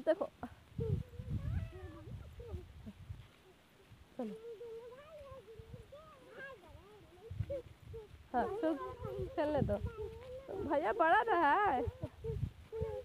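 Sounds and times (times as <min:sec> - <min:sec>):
child's wavering vocal call: 0:00.7 - 0:10.8, 0:11.7 - 0:13.0.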